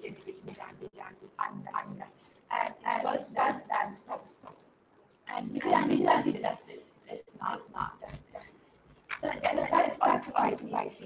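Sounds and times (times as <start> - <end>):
girl speaking indistinctly: 0.0 - 4.4, 5.3 - 8.5, 9.1 - 11.0.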